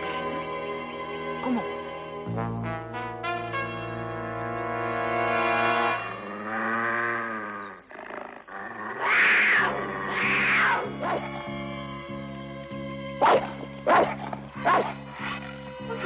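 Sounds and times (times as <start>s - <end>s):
dramatic orchestral music: 0.0s - 6.7s, 9.7s - 16.0s
cartoon wildcat snarling: 6.2s - 11.5s.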